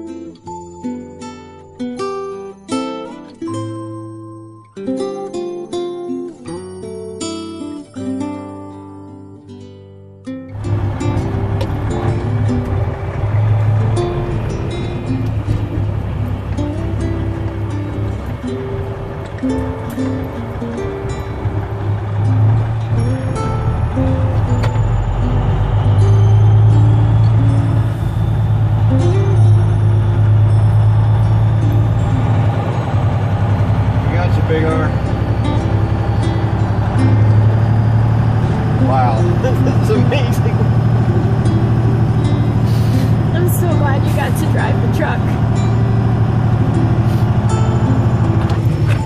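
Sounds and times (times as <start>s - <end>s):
music playing: 0.0s - 49.0s
truck engine droning: 10.5s - 49.0s.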